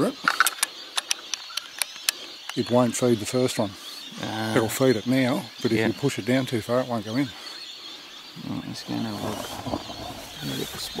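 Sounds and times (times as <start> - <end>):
rifle bolt metallic clicks: 0.2 - 2.6.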